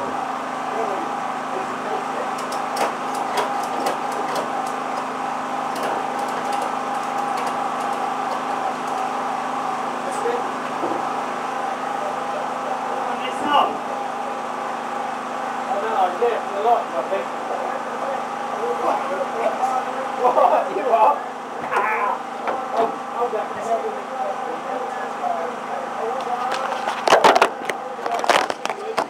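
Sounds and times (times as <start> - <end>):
sharp clicks: 2.4 - 5.1.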